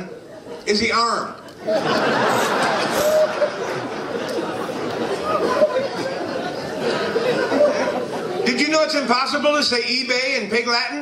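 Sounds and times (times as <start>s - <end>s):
people chattering: 0.0s - 11.0s
audience laughing: 1.5s - 8.6s.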